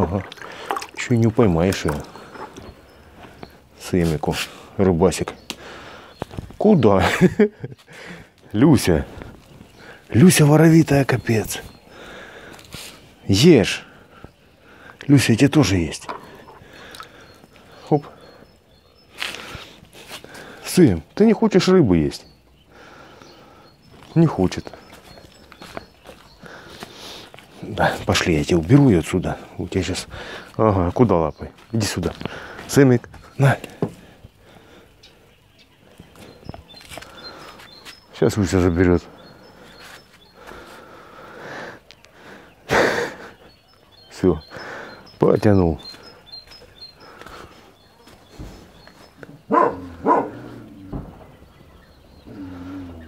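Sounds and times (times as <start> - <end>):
water splashing in a plastic bucket: 0.0 - 2.7
faint outdoor background: 0.0 - 53.0.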